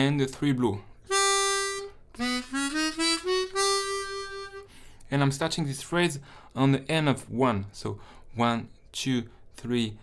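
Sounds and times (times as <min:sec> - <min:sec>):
harmonica playing held notes and runs: 0:01.1 - 0:04.7.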